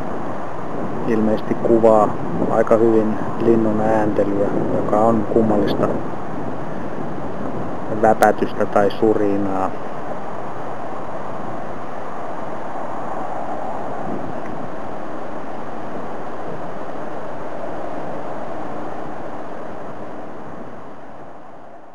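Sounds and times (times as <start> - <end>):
steady rushing outdoor noise: 0.0 - 21.9.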